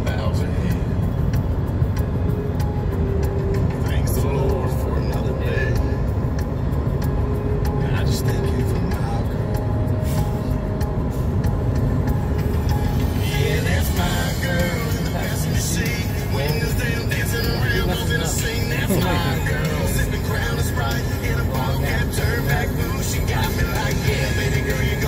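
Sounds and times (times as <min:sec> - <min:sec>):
car road and engine rumble: 0:00.0 - 0:25.0
music playing: 0:00.0 - 0:25.0
person singing: 0:13.2 - 0:25.0.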